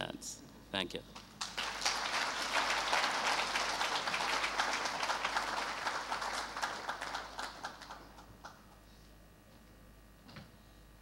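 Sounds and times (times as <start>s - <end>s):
audience applauding: 1.4s - 8.7s.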